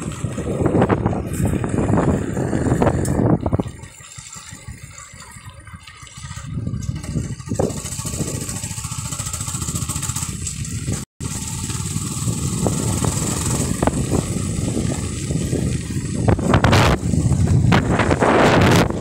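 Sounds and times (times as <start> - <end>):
vehicle engine running: 0.0 - 19.0
wind noise: 0.0 - 19.0.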